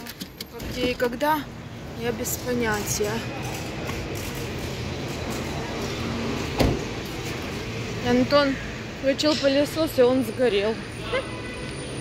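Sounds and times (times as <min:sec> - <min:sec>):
traffic and engine noise: 0:00.0 - 0:12.0.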